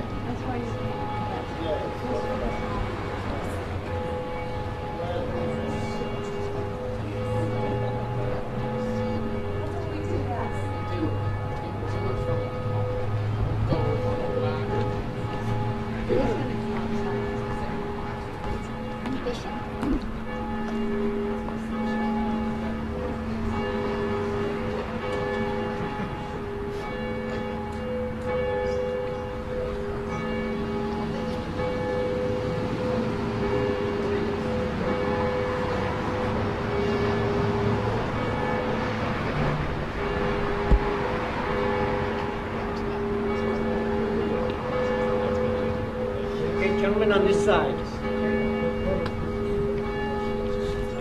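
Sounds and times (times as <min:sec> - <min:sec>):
cathedral bells ringing: 0:00.0 - 0:51.0.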